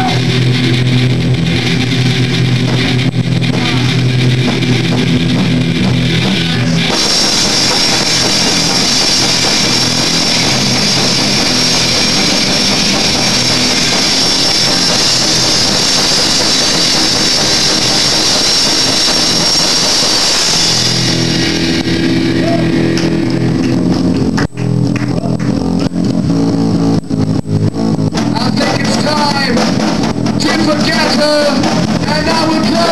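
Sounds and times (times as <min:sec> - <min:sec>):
distorted electric guitars: 0:00.0 - 0:32.9
cymbals crashing: 0:06.8 - 0:24.3.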